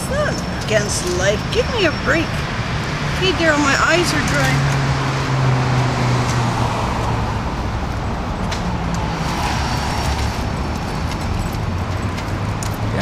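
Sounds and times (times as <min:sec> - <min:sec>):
road noise: 0:00.0 - 0:13.0
vehicle engine humming: 0:00.0 - 0:13.0.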